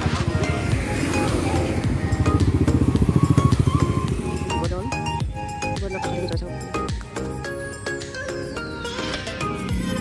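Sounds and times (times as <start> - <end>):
motorcycle engine running: 0.0 - 5.5
background music: 0.0 - 10.0.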